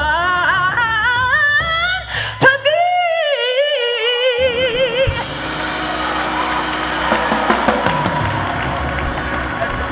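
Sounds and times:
church music with low bass: 5.0 - 9.9
congregation noise: 5.2 - 9.9.

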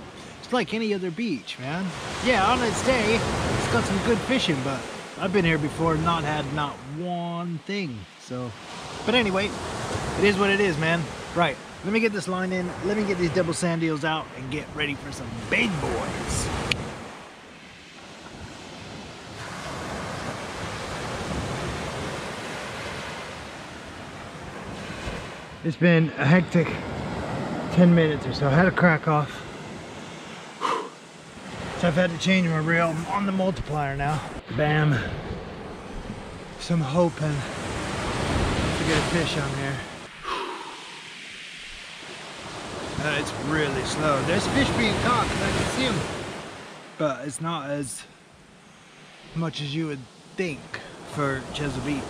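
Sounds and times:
sea surf on shingle: 0.0 - 52.0
man sighing: 30.6 - 31.0, 40.2 - 41.1
wind on microphone: 37.5 - 46.4.

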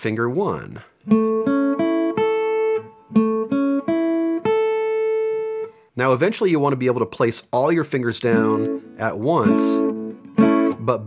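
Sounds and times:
guitar strings picked: 8.3 - 11.0.

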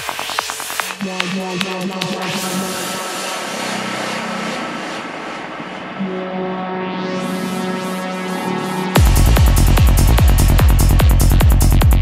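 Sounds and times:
gritty synth noise wash: 0.0 - 12.0
buzzing low synth tone: 3.4 - 12.0.

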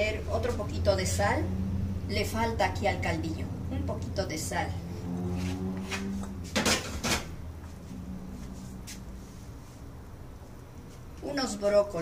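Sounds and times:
kitchenware knocking and clinking: 6.6 - 7.3.

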